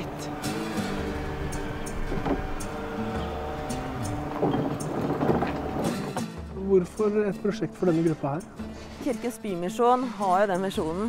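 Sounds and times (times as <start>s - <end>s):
synth chords over bass line: 0.0s - 6.6s.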